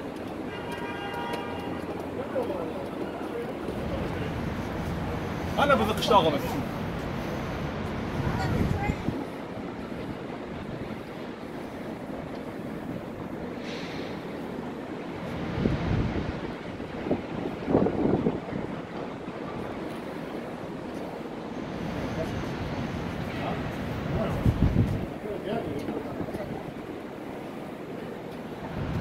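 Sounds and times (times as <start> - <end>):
outdoor city background: 0.0 - 29.0
wind noise on microphone: 6.8 - 14.4, 15.1 - 20.2, 23.8 - 27.2, 28.6 - 29.0.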